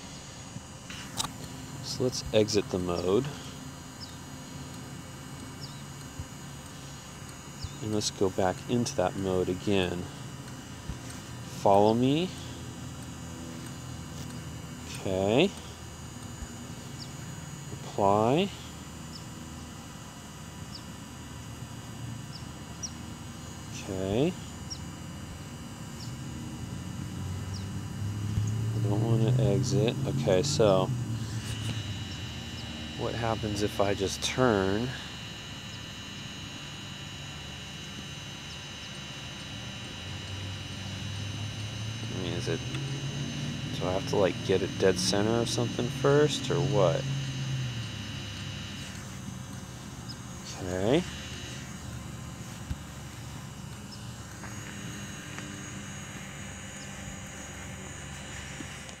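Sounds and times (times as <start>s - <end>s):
drone propeller hum: 0.0s - 59.0s
outdoor background noise: 0.0s - 59.0s
thin high whine: 0.0s - 59.0s.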